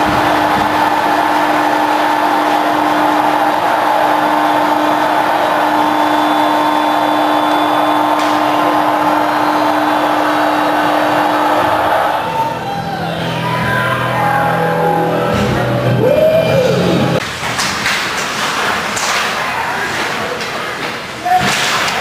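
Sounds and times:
arena horn long tone: 0.0 - 12.3.

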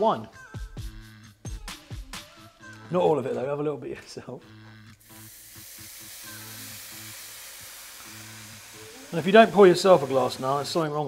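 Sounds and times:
background music with low notes: 0.0 - 11.0
wine sizzling in hot pan: 5.0 - 11.0.

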